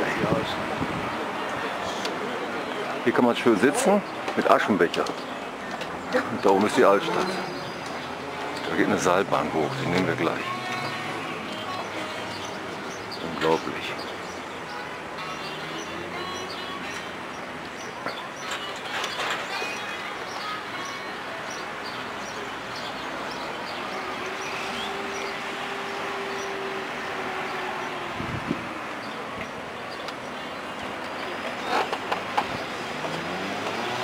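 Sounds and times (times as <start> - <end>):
distant traffic: 0.0 - 34.0
passing vehicle engine hum: 5.3 - 18.0, 21.3 - 34.0.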